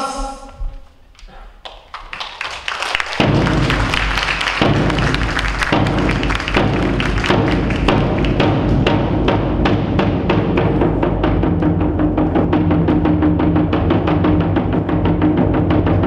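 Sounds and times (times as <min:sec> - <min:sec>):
steady drum beat: 0:03.0 - 0:16.0.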